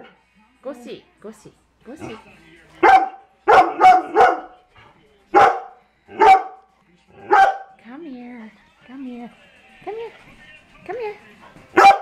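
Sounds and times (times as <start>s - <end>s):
dog barking: 2.8s - 4.6s, 5.3s - 7.8s, 11.7s - 12.0s.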